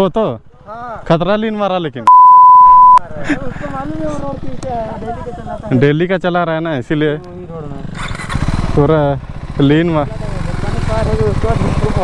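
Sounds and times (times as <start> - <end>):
censor bleep tone: 2.1 - 3.0.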